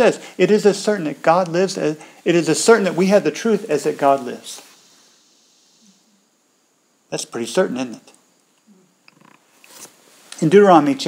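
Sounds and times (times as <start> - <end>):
intake of breath: 2.0 - 2.2.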